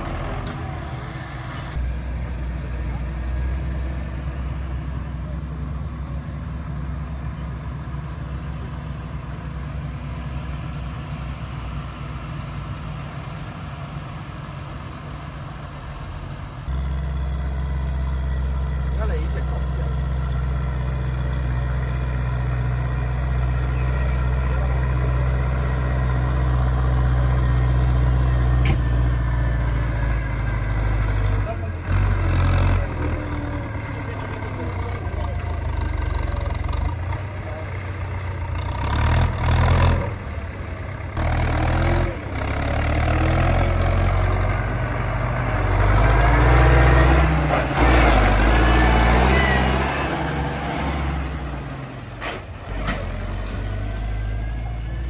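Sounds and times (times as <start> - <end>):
tractor engines running: 0.0 - 55.0.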